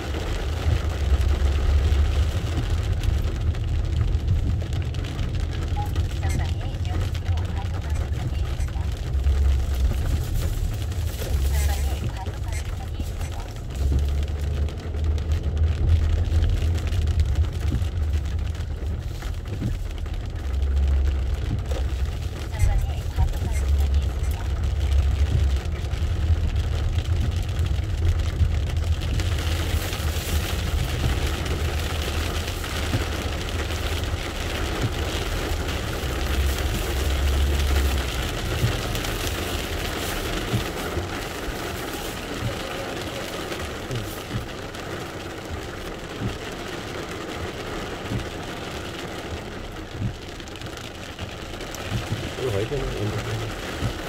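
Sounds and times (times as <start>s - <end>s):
car engine and road rumble: 0.0s - 54.0s
rain and wet tyres hissing: 0.0s - 54.0s.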